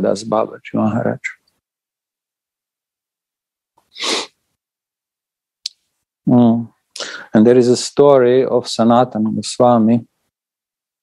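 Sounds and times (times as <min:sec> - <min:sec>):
short breathy burst: 0:03.9 - 0:04.4.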